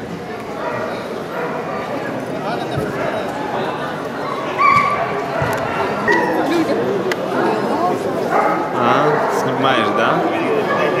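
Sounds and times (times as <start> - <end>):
crowd chatter in hall: 0.0 - 11.0.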